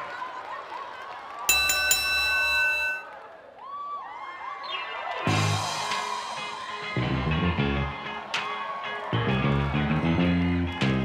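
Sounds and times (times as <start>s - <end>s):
crowd whooping: 0.0s - 11.0s.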